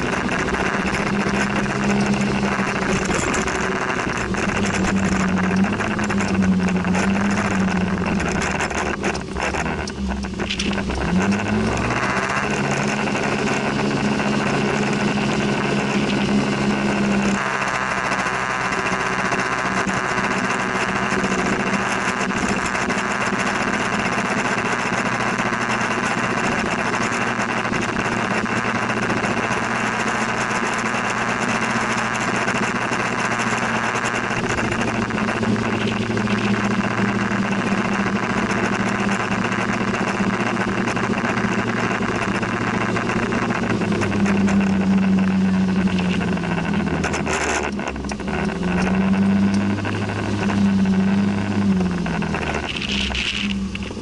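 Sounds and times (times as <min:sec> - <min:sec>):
road and wind noise: 0:00.0 - 0:54.0
scooter engine running: 0:00.0 - 0:54.0.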